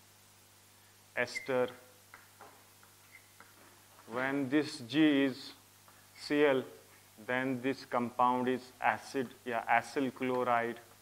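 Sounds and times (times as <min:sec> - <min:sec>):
faint steady hum: 0:00.0 - 0:11.0
chalk tapping on chalkboard: 0:02.1 - 0:03.6.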